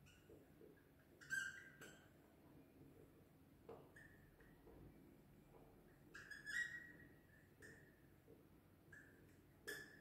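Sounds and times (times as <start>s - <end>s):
marker squeaking on whiteboard: 6.1s - 7.0s.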